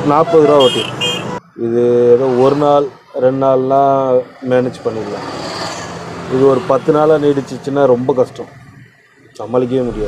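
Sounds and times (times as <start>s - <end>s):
man speaking: 0.0s - 1.0s, 9.4s - 10.0s
vehicle passing by: 4.6s - 7.8s, 9.7s - 10.0s.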